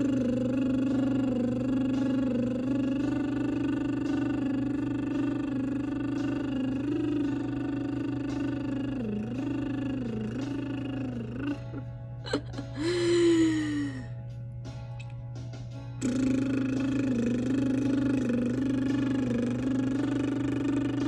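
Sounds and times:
woman humming: 0.0 - 14.2, 16.0 - 21.0
low background hum: 0.0 - 21.0.

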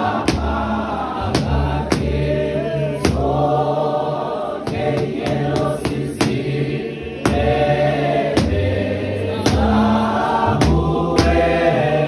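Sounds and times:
sharp percussive beats: 0.0 - 2.4, 3.0 - 3.7, 4.6 - 11.9
choir singing a hymn in harmony: 0.0 - 12.0.

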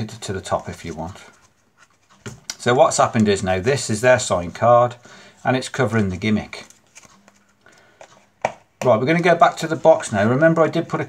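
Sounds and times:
man speaking: 0.0 - 1.4, 2.5 - 6.7, 8.8 - 11.0.

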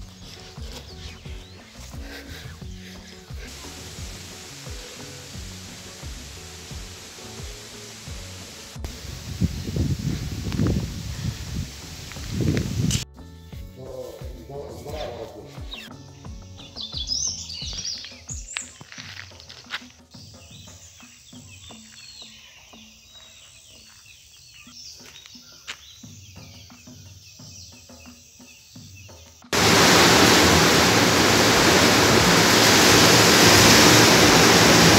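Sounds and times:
birds chirping: 0.0 - 13.0, 13.7 - 34.9
loud steady rushing noise: 3.3 - 13.0, 29.6 - 34.9.

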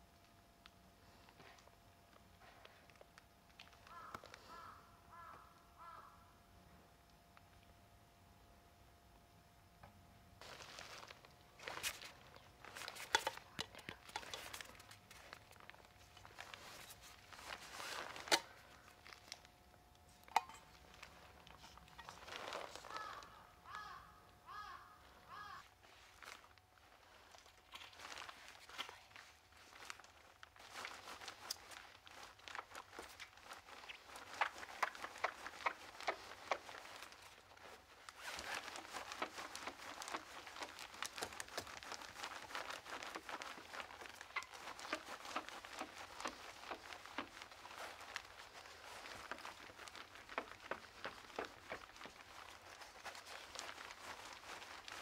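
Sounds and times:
crow cawing faintly: 3.7 - 6.5, 22.4 - 26.4
rustles and scuffs of handling: 10.4 - 23.5, 25.0 - 55.0.

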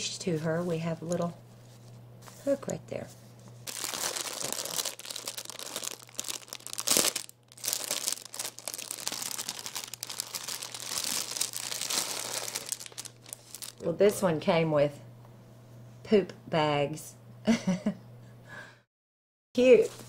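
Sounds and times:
plastic packaging crinkling: 3.6 - 13.9.

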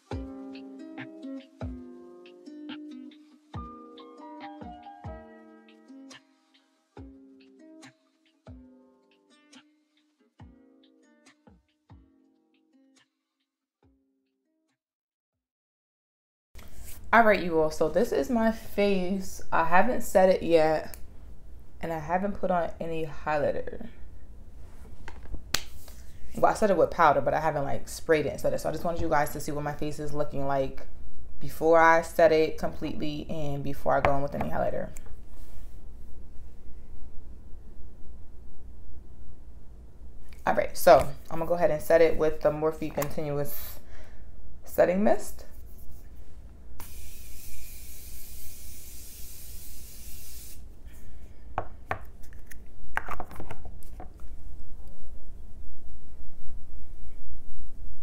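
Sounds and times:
low steady hum: 17.0 - 47.8, 50.6 - 58.0
spray bottle mist hissing: 46.8 - 50.7.

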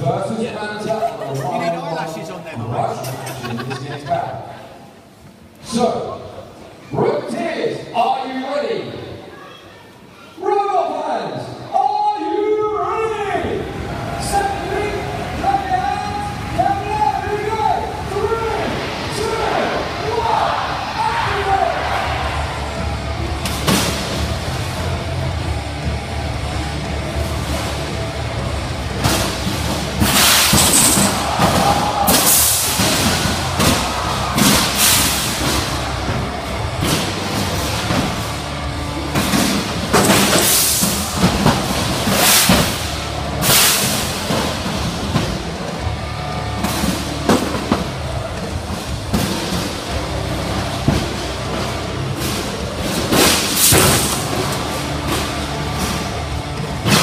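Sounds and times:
music over arena pa: 11.6 - 57.0
combat robots crashing: 29.0 - 38.4, 39.0 - 45.7, 46.5 - 57.0.

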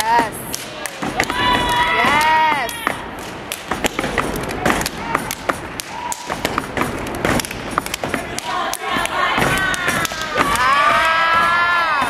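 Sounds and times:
hands clapping: 0.0 - 12.0.

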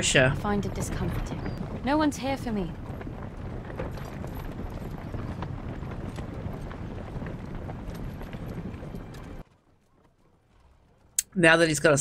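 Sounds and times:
horses hooves clip-clopping: 0.0 - 11.2.

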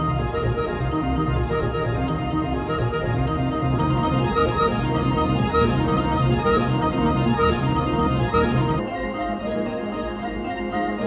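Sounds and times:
held bass line: 0.0 - 8.9
electronic keyboard with organ tone: 0.0 - 11.0.

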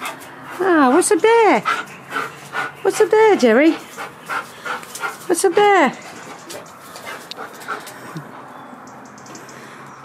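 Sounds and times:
dog panting: 0.0 - 8.3.

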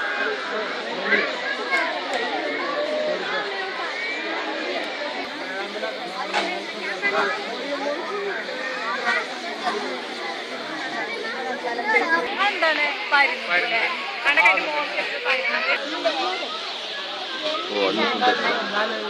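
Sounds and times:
murmur of overlapping voices: 0.0 - 19.0.

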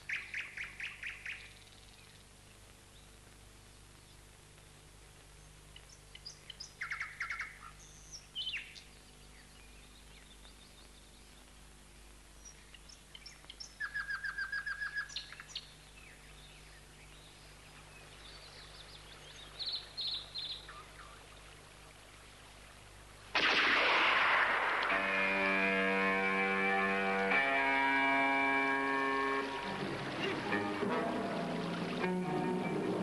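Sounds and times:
faint background hiss: 0.0 - 33.0
music with held chords: 24.9 - 33.0.

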